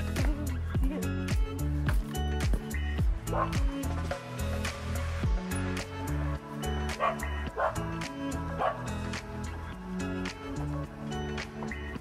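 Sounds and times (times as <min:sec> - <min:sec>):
music with steady beat: 0:00.0 - 0:12.0
small dog barking: 0:03.3 - 0:03.6, 0:07.0 - 0:07.8, 0:08.6 - 0:08.9.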